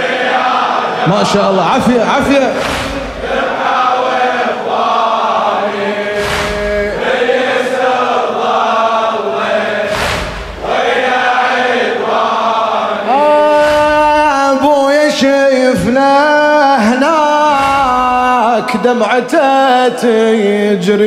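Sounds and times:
men chanting in unison: 0.0s - 21.0s
man reciting solo: 1.0s - 3.4s, 6.2s - 7.3s, 13.0s - 21.0s
collective chest-beating: 5.9s - 7.5s, 13.5s - 14.4s.

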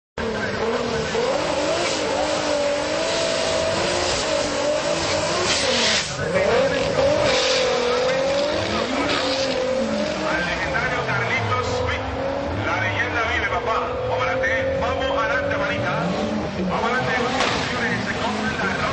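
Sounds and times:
car engine revving and accelerating: 0.2s - 18.9s
people talking: 5.8s - 18.9s.

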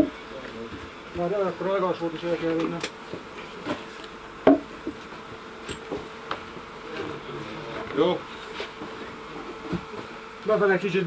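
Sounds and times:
steady hum: 0.0s - 11.0s
wooden timbers knocking: 4.4s - 5.0s.

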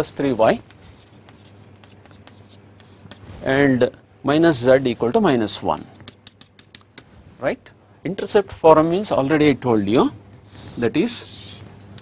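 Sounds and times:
chalk scratching on chalkboard: 0.7s - 3.4s, 5.7s - 7.1s, 9.7s - 12.0s.

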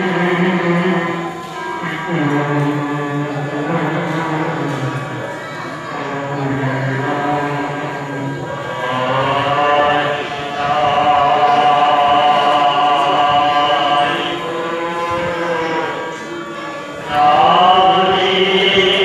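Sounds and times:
devotional chanting: 0.0s - 19.0s.

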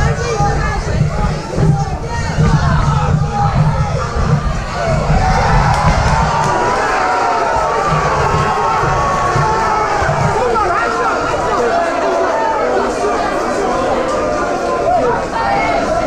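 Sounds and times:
crowd cheering and shouting: 0.0s - 16.0s.

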